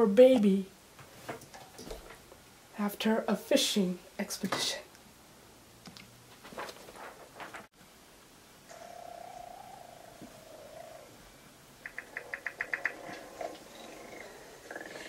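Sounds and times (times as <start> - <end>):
creature rattling trill: 11.8 - 15.0
creature moaning call: 12.7 - 15.0.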